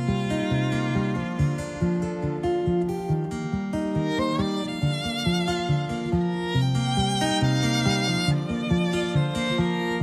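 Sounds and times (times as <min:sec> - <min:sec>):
bowed strings: 0:00.0 - 0:10.0
fingerpicked acoustic guitar: 0:00.0 - 0:10.0.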